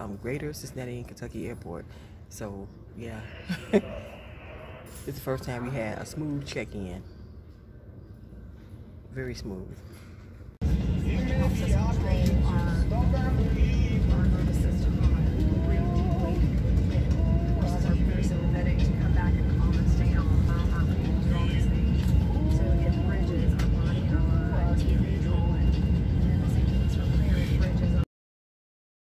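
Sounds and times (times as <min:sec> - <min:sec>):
indistinct voices: 0:02.9 - 0:07.2, 0:10.8 - 0:28.0
airliner cabin engine rumble: 0:10.6 - 0:28.0.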